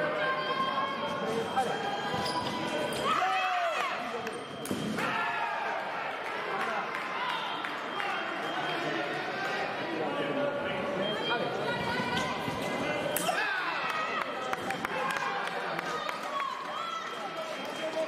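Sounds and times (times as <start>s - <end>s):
murmur of voices echoing: 0.0s - 18.0s.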